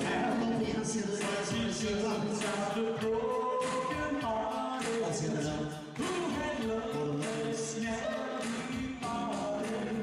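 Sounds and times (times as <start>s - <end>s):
man singing into a microphone: 0.0s - 10.0s
music with a regular beat: 0.0s - 10.0s.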